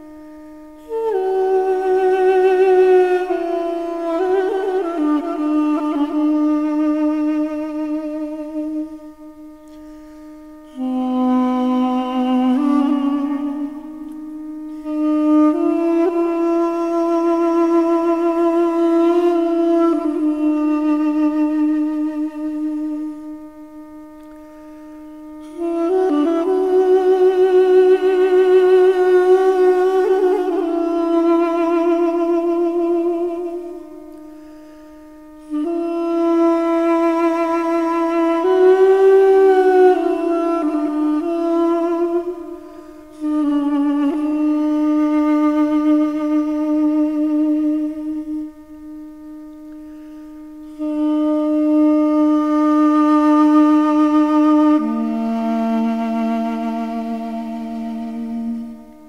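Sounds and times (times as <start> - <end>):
duduk slow melody: 0.0 - 59.0.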